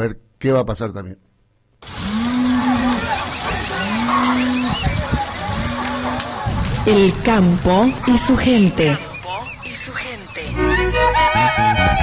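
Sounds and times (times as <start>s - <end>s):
cow mooing: 1.9s - 6.3s.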